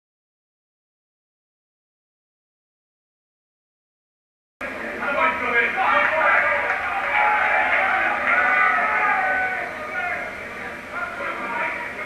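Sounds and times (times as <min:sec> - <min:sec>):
muffled voices calling out: 0:04.7 - 0:12.0.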